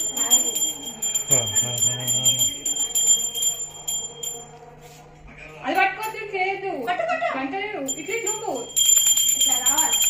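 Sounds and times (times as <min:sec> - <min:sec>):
hand bell rung rapidly: 0:00.0 - 0:04.6, 0:07.8 - 0:10.0.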